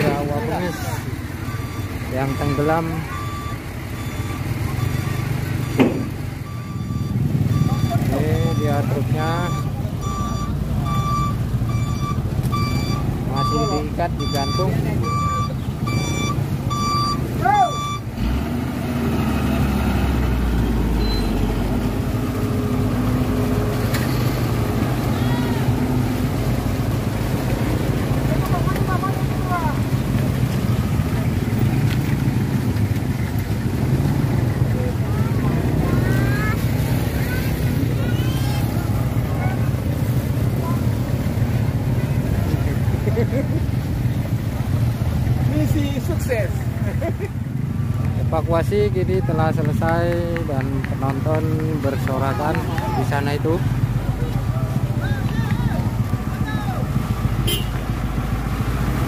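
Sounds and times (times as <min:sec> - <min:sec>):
heavy truck engine running: 0:00.0 - 0:46.0, 0:49.5 - 0:59.0
reversing alarm beeping: 0:01.4 - 0:18.1.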